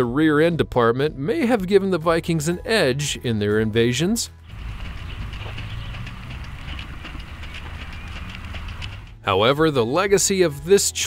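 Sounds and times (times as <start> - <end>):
hoofbeats in sand: 4.4 - 9.3.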